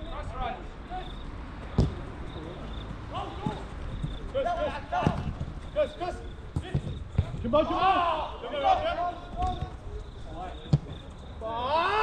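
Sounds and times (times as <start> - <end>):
ball being kicked: 1.7 - 2.1, 6.5 - 7.5
players shouting: 1.8 - 12.0.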